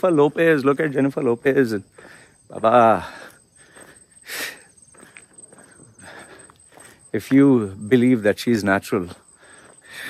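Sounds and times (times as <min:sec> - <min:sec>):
footsteps on paved road: 0:00.0 - 0:10.0
high insect buzz: 0:00.0 - 0:10.0.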